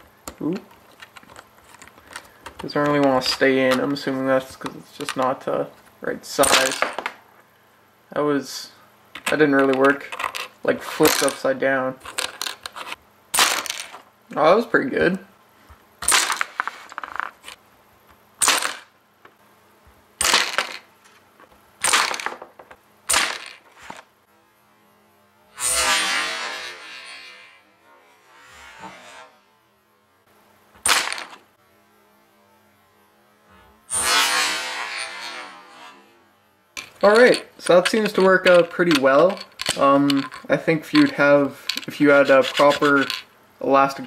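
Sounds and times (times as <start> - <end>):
sharp clacks of coin launcher: 6.4 - 7.2, 9.2 - 11.5, 13.4 - 14.0, 16.0 - 17.3, 18.4 - 18.9, 20.2 - 20.9, 21.8 - 22.4, 23.1 - 24.0, 30.8 - 31.4, 36.8 - 43.3.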